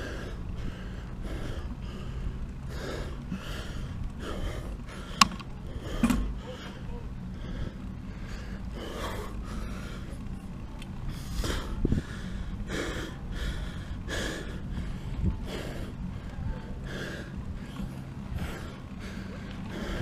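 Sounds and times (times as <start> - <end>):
cyclist breathing hard: 0.0 - 20.0
low rumble from riding: 0.0 - 20.0
sharp click: 5.2 - 6.3.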